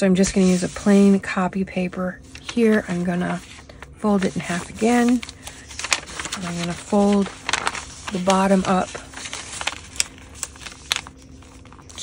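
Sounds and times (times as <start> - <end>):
paper rustling: 2.3 - 12.0
paper creasing ticks: 4.5 - 12.0.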